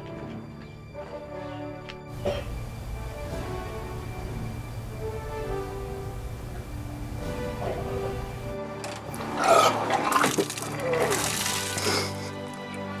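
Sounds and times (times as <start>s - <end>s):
background music: 0.0s - 13.0s
man retching and vomiting: 9.2s - 12.4s
liquid splattering: 9.8s - 12.3s.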